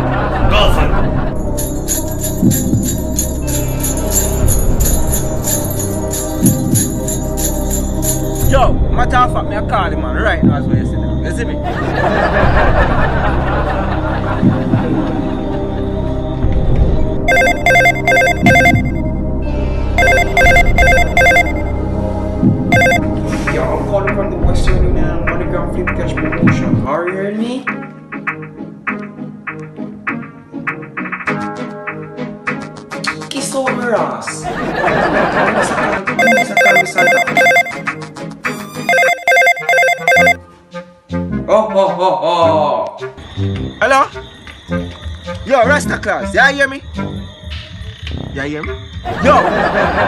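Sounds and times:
background music: 0.0 - 50.0
telephone trilling ring: 17.3 - 19.1, 20.0 - 21.8, 22.8 - 23.0, 36.2 - 37.9, 38.6 - 40.4.

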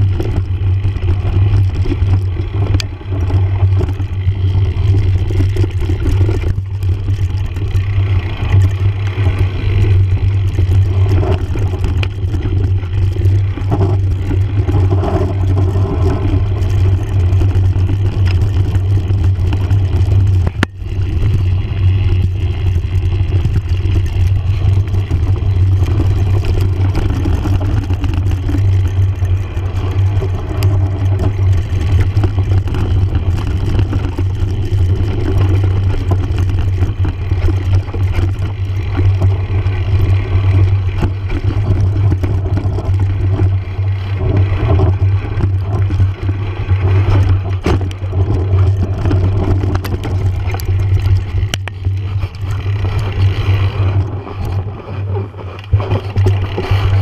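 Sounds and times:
bike rattling over bumps: 0.0 - 57.0
tyres rumbling on gravel: 0.0 - 57.0.

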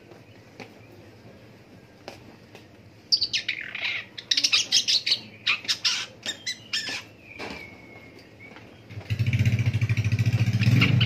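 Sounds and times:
bird chattering song: 3.1 - 9.9, 10.5 - 11.0.

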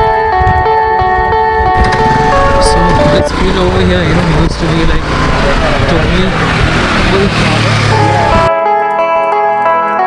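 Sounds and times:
loud steady rushing noise: 1.8 - 8.5.

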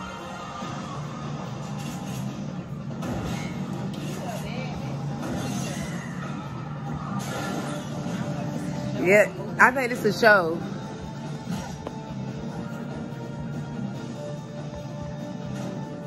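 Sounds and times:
television music: 0.0 - 16.0.

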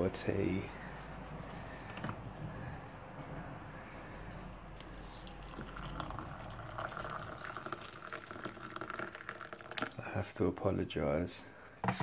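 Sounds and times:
water pouring into a cup: 4.8 - 10.1.

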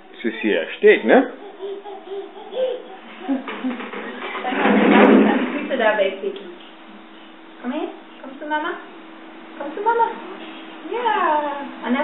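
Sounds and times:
small children babbling: 1.1 - 3.6.

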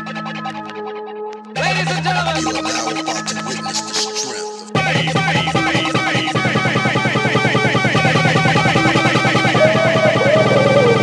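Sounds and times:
repeating synth riffs: 0.0 - 11.0.

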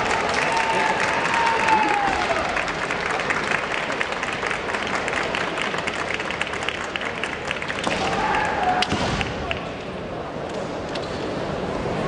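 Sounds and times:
spectators applauding: 0.0 - 8.8
fighter's long shout: 0.6 - 2.5.

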